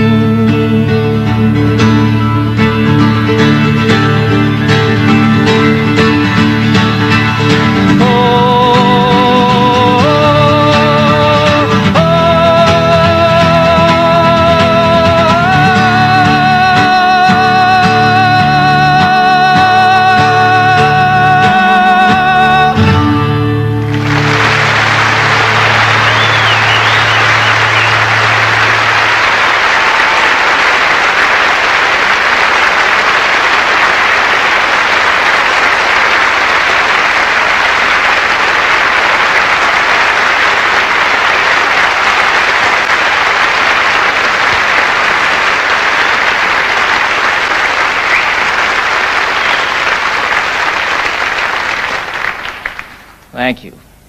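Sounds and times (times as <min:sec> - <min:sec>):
audience applauding: 0:01.8 - 0:21.1, 0:23.6 - 0:53.5.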